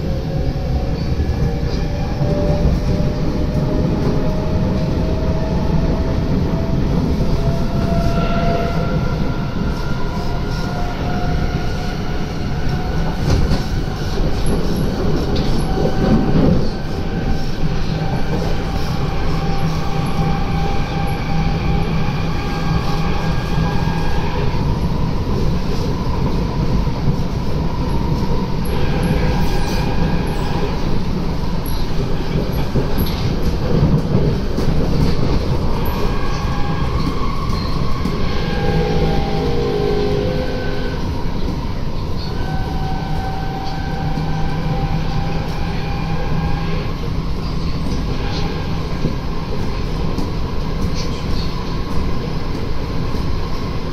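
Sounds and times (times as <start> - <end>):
train wheels rumbling: 0.0 - 53.9.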